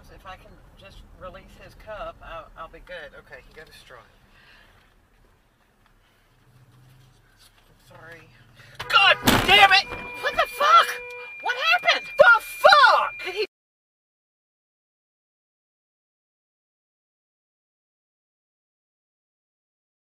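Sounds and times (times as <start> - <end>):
car impact: 8.8 - 11.2
steady tone: 8.8 - 13.5
person shouting: 8.9 - 13.4.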